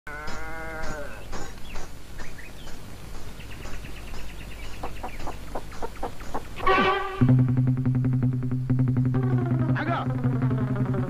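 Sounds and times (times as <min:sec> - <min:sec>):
quavering bleat: 0:00.1 - 0:01.3, 0:06.6 - 0:07.3.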